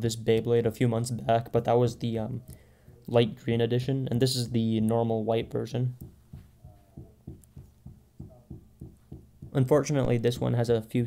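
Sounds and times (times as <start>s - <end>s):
faint low thumps: 5.4s - 10.3s.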